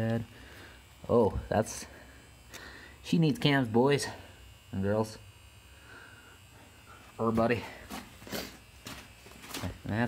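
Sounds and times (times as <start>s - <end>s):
man talking: 1.0s - 1.9s, 3.0s - 5.2s, 7.2s - 7.8s, 9.6s - 10.0s
faint scuffs and rustles: 7.0s - 9.9s.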